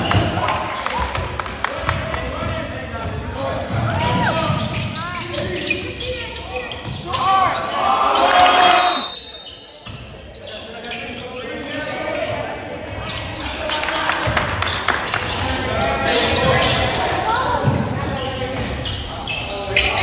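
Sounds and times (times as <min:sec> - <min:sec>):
players' voices in a gym: 0:00.0 - 0:20.0
sneakers squeaking: 0:00.0 - 0:20.0.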